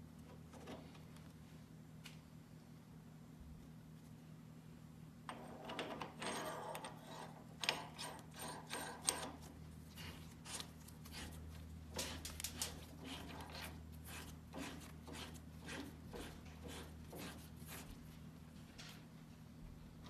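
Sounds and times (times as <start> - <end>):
metallic clicks and scraping: 10.5 - 13.7.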